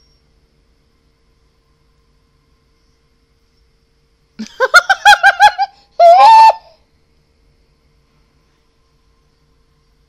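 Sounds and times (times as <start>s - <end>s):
woman giggling: 4.4s - 6.7s
woman squealing with laughter: 4.4s - 6.8s.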